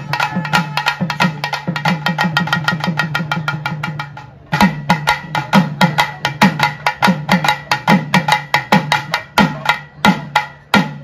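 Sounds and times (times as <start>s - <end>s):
drum beaten fast with stick: 0.0s - 11.0s.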